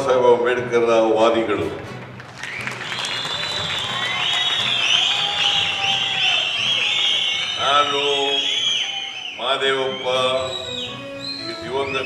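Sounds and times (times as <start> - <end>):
crowd applauding and cheering: 1.9 - 12.0
high shouts: 2.8 - 11.1.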